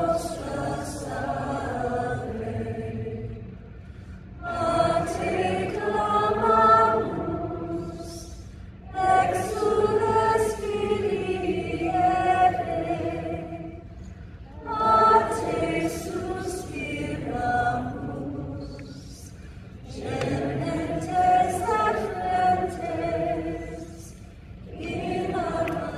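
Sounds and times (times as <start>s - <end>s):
choir singing a hymn: 0.0s - 25.9s.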